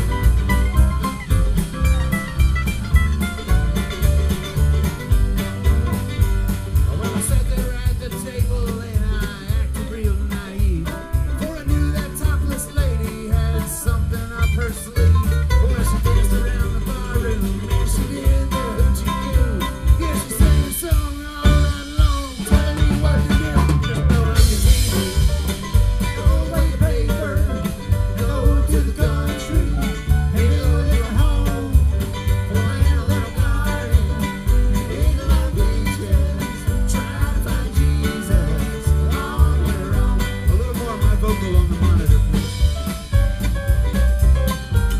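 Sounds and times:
acoustic guitar: 0:00.0 - 0:44.9
mandolin: 0:00.0 - 0:44.9
upright bass: 0:00.0 - 0:44.9.

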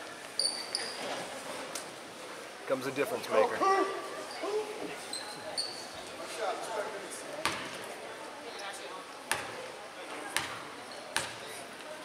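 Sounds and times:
short high squeaks: 0:00.4 - 0:01.2, 0:05.1 - 0:05.9.

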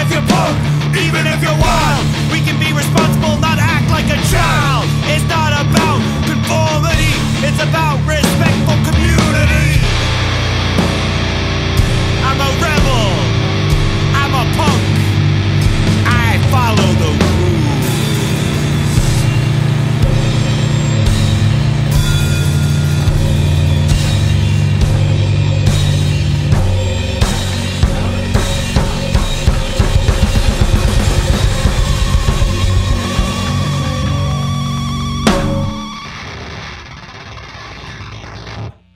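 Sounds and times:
drumming: 0:00.0 - 0:36.3
distorted guitar and bass droning: 0:00.0 - 0:38.9.

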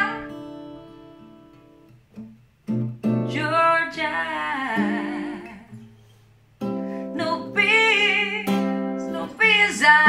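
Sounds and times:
acoustic guitar soft notes: 0:00.0 - 0:10.0.

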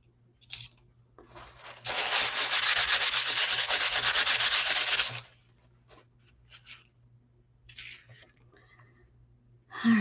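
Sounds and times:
wipe scrubbing on paper: 0:01.5 - 0:05.3.

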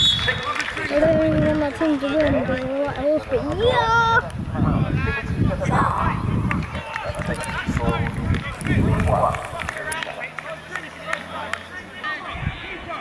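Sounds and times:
voices talking and calling out: 0:00.0 - 0:13.0.

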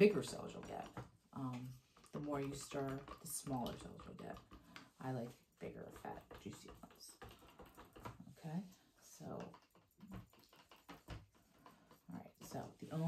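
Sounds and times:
stir sticks tapping plastic cups: 0:00.0 - 0:13.0.

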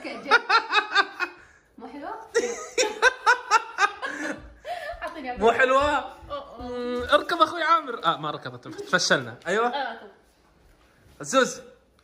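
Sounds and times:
person laughing: 0:02.4 - 0:05.0.

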